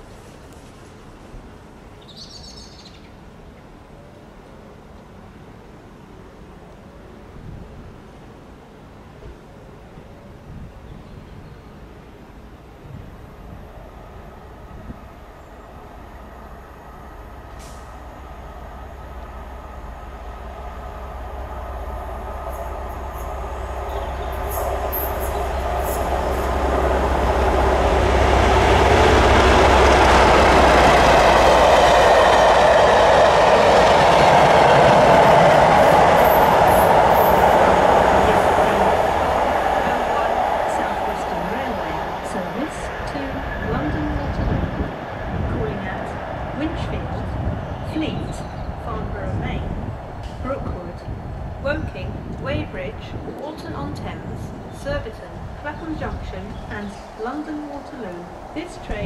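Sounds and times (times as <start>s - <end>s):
diesel locomotive engine drone: 3.1s - 59.0s.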